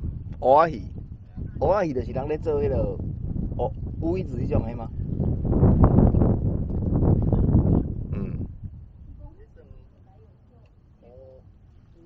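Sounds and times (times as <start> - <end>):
wind buffeting microphone: 0.0 - 10.5.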